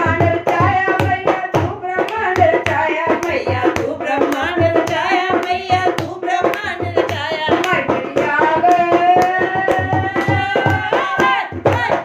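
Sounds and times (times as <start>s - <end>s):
hand drum beats: 0.0s - 12.0s
rhythmic hand claps: 0.0s - 12.0s
woman singing: 0.0s - 12.0s.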